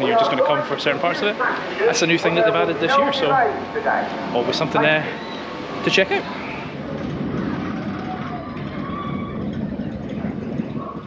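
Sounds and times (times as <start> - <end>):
miniature train rumbling on rails: 4.4 - 11.0.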